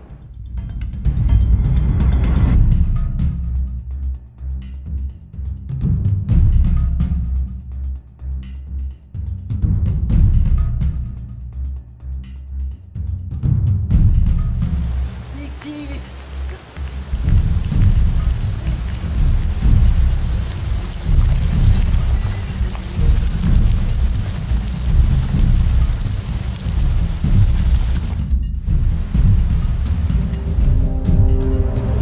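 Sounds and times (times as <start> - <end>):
heavy rain pouring: 14.5 - 32.0
thunder rumbling: 14.5 - 32.0.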